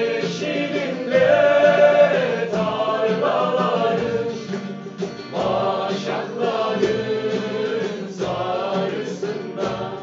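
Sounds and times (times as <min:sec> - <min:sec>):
group of men singing: 0:00.0 - 0:10.0
strummed acoustic guitar: 0:00.0 - 0:10.0.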